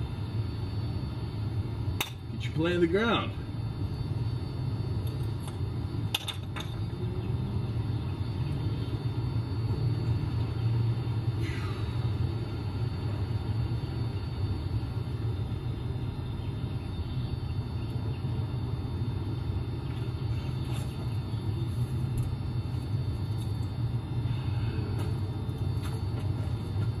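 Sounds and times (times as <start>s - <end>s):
steady low rumble: 0.0s - 27.0s.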